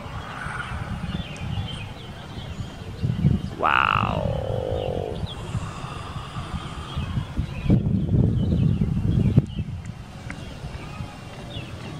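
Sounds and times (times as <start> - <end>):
wind buffeting microphone: 0.0 - 11.9.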